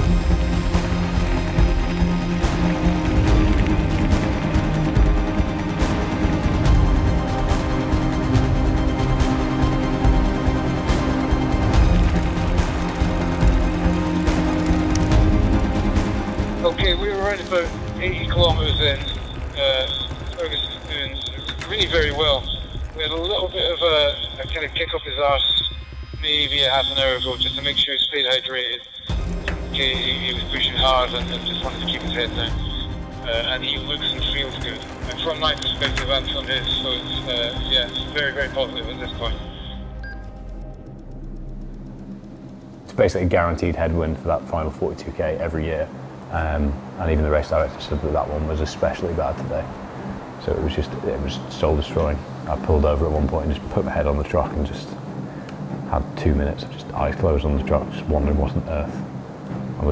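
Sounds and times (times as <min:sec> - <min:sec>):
low rumble: 0:00.0 - 0:27.9
fast faint ticking: 0:00.0 - 0:47.0
low steady drone: 0:00.0 - 0:59.9
music with long held tones: 0:00.0 - 0:59.9
voice: 0:16.6 - 0:29.1, 0:29.7 - 0:39.8, 0:42.9 - 0:49.7, 0:50.4 - 0:55.0, 0:55.9 - 0:59.0.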